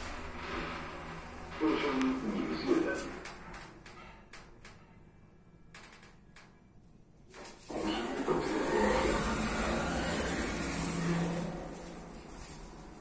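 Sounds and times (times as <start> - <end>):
elevator doors sliding open: 0.0 - 4.8, 7.6 - 13.0.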